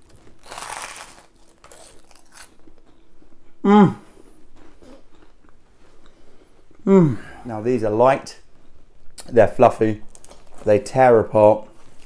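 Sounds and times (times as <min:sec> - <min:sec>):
crust crackling as torn: 0:00.0 - 0:02.6, 0:10.1 - 0:10.7.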